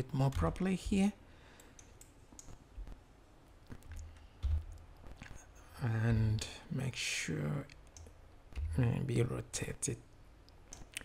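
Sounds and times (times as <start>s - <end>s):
faint room noise: 0.0s - 11.0s
keyboard clicks: 1.6s - 2.6s
computer mouse clicks: 1.6s - 3.0s, 7.7s - 8.8s, 10.5s - 11.0s.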